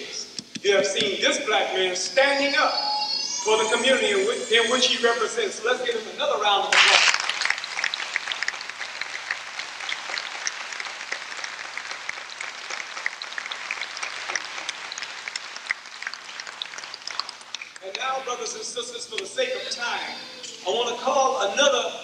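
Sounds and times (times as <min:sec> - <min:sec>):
audience applauding: 0:06.7 - 0:18.1.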